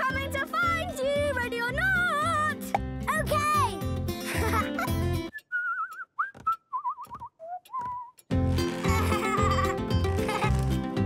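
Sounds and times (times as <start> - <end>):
bouncy cartoon music: 0.0 - 11.0.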